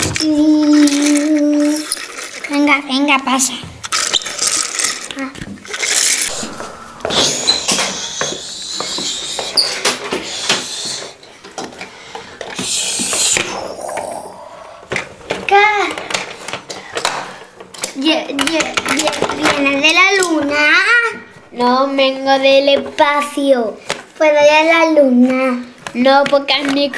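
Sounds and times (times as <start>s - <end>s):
young children's voices: 0.0s - 3.8s, 12.6s - 16.4s, 17.8s - 26.9s
long hissing noises: 6.3s - 11.2s, 12.6s - 15.0s.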